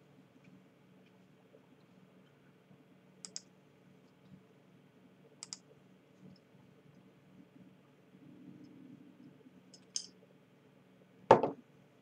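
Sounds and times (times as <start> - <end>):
faint steady hum: 0.0 - 12.0
computer mouse double-clicks: 3.2 - 3.5, 5.4 - 5.6.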